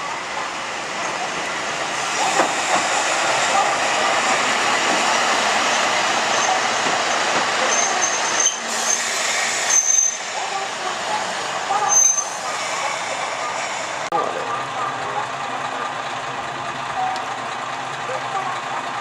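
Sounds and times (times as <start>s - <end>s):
railcar engine and wheels rumbling: 0.0s - 19.0s
high brake squeals: 5.6s - 10.4s, 11.8s - 12.8s.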